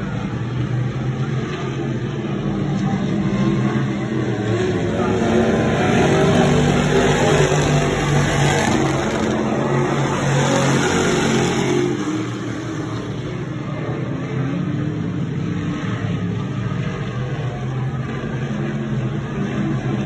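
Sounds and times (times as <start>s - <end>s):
race car engines droning: 0.0s - 20.0s.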